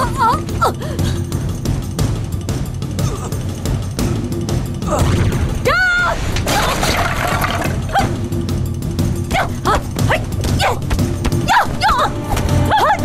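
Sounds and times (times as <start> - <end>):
dramatic background music: 0.0 - 13.0.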